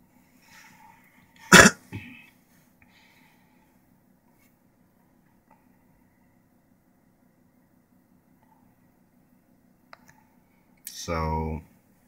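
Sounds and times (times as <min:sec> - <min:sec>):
faint low hum: 0:00.0 - 0:12.0
person coughing: 0:01.5 - 0:02.2.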